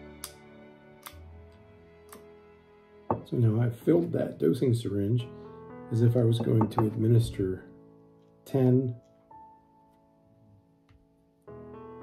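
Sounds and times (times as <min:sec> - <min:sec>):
background guitar music: 0:00.0 - 0:10.2.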